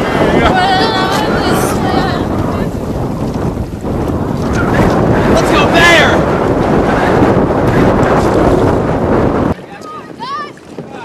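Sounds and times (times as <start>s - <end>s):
strong wind buffeting microphone: 0.0s - 11.0s.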